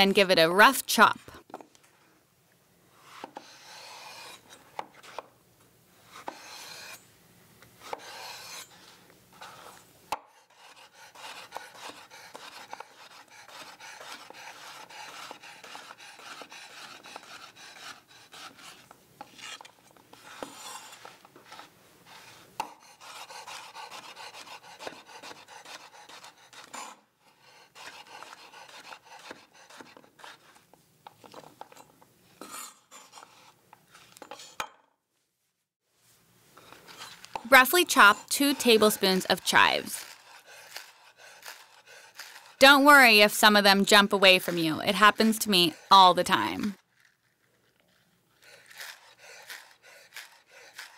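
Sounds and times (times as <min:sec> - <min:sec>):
knife slicing zucchini: 0:07.8 - 0:30.6, 0:36.6 - 0:43.2, 0:46.6 - 0:50.9.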